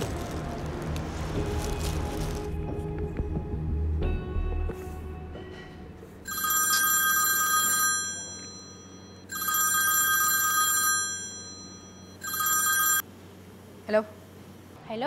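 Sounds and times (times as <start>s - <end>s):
mobile phone electronic ringtone: 6.3s - 13.1s.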